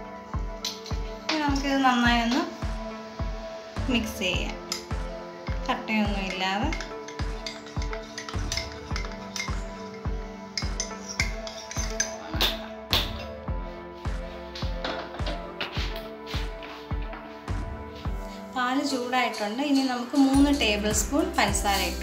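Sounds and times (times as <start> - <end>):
low thumping beat: 0.0 - 18.3, 20.4 - 22.0
background music: 0.0 - 22.0.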